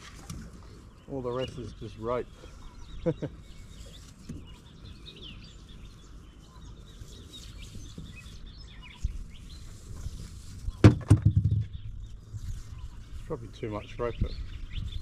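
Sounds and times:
birds chirping: 0.0 - 15.0
loud knocks and thumps: 10.8 - 11.8.

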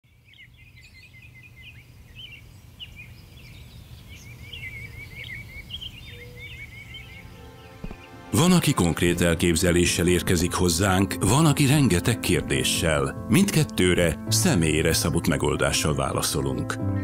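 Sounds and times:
small birds chirping: 0.0 - 8.3
music: 6.9 - 17.0.

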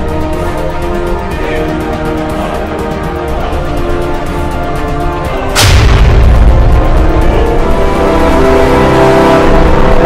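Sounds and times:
cinematic score: 0.0 - 10.0
cinematic boom hit with rumble: 5.6 - 7.4.

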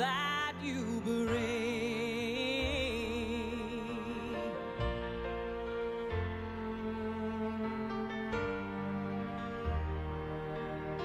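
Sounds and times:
slow ballad with strings: 0.0 - 11.0.

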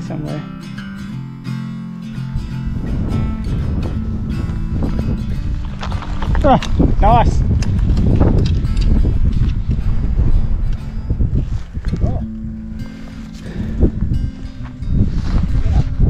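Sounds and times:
wind buffeting microphone: 2.0 - 16.0.

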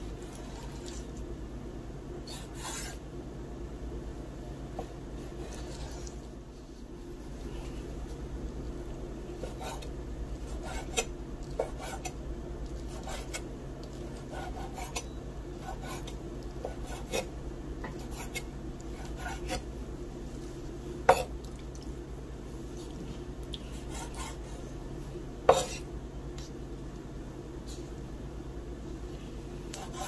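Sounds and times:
knife slicing on cutting board: 25.5 - 25.8.

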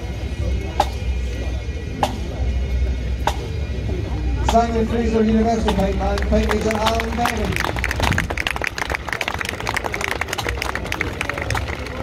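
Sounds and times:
crowd applauding: 5.8 - 12.0.

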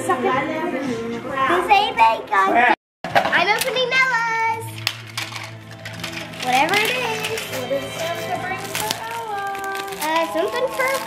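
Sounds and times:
background music: 3.3 - 11.0
singing tones: 6.5 - 11.0.

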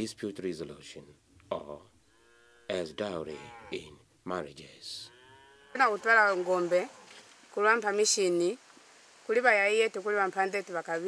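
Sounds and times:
cattle mooing: 2.0 - 4.0, 5.0 - 7.1.

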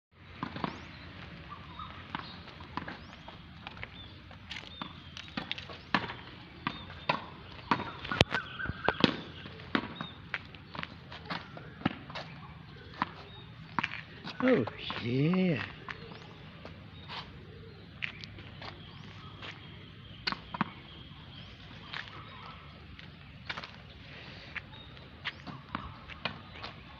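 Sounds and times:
ball bouncing on hard court: 0.4 - 1.1, 1.7 - 3.1, 4.8 - 12.3
tennis ball popping off racket: 4.8 - 10.1.

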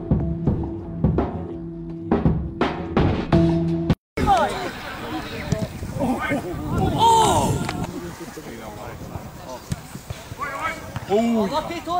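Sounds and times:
distant shouts: 4.2 - 8.2.

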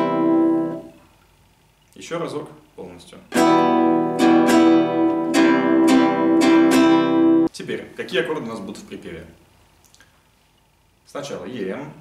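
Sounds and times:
nylon-string guitar strummed: 0.0 - 1.0, 3.3 - 7.5.

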